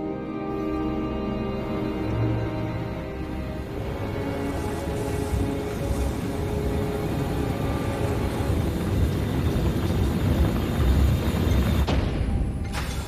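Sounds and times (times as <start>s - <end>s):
fluttering engine drone: 1.4s - 11.9s.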